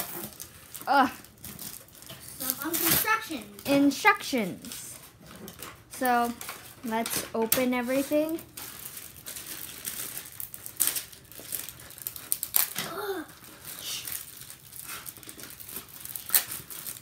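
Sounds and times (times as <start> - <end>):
plastic packaging crinkling: 0.0 - 17.0.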